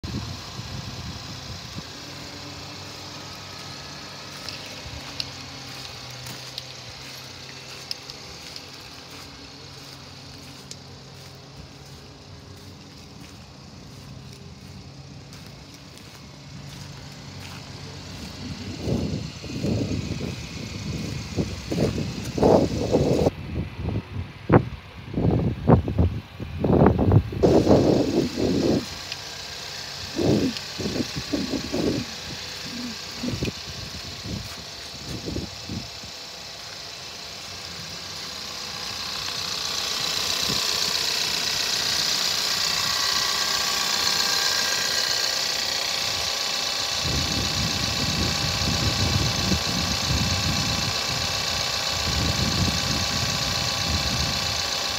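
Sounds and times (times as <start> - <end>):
loud rumbling bursts: 0.0 - 54.7
car engine idling: 0.0 - 54.9.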